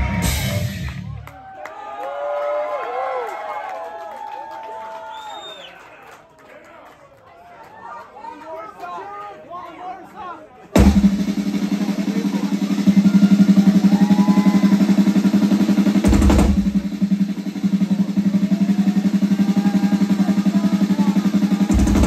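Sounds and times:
heavy drum hit: 0.0 - 1.2, 10.8 - 22.0
crowd chatter: 5.9 - 22.0
fast drum roll: 10.8 - 22.0.

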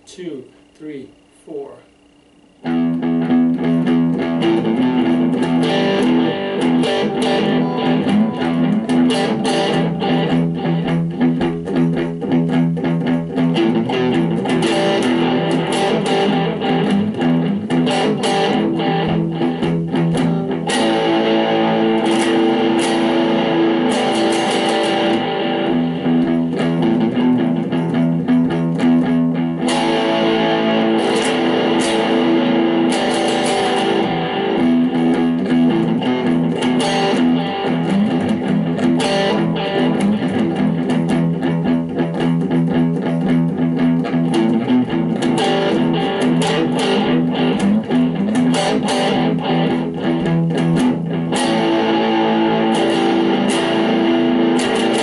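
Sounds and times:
electric guitar playing blues: 2.6 - 55.0.

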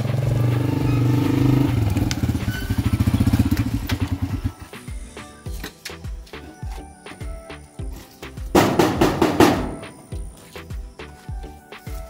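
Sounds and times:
small motorcycle engine: 0.0 - 4.7.

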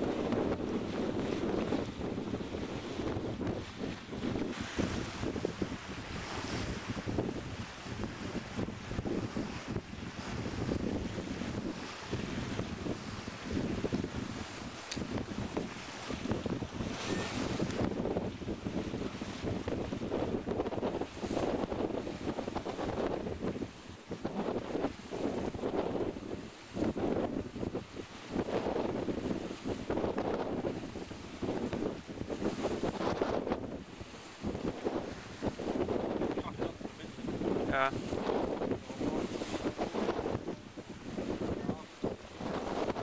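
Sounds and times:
water rushing along hull: 0.0 - 43.0
wind buffeting microphone: 0.0 - 43.0.

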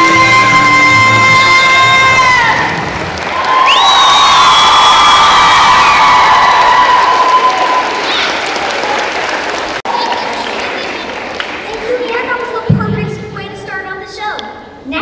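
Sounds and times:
long high-pitched cheer: 0.0 - 10.6
audience applauding: 1.8 - 12.3.

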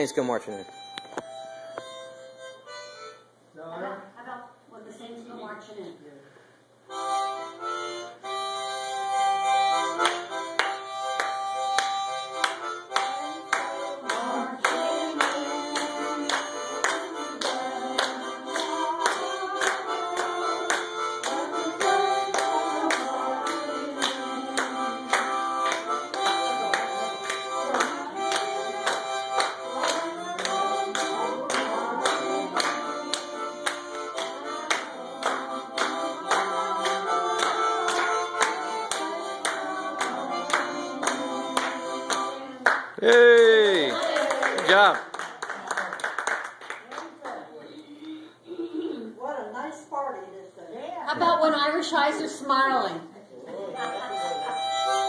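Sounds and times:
harmonica playing chords: 0.0 - 3.6, 6.9 - 42.7, 53.7 - 55.0
hand claps in time: 9.8 - 47.1.

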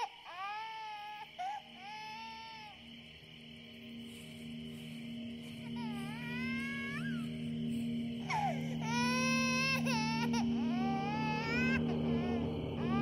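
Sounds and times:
baby crying: 0.0 - 2.9, 5.7 - 7.4, 8.2 - 13.0
steady low drone: 3.2 - 13.0.

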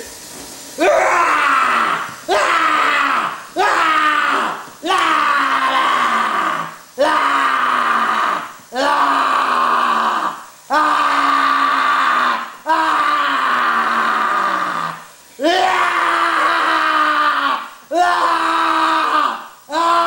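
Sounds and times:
person screaming: 0.8 - 20.0.

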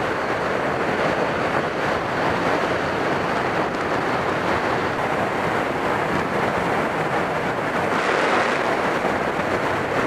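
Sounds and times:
wind rushing on microphone: 0.0 - 10.0.

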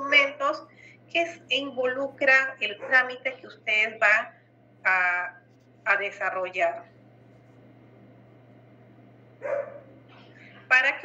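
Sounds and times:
faint low hum: 0.0 - 11.0
dog bark: 2.8 - 3.1, 9.4 - 9.9.

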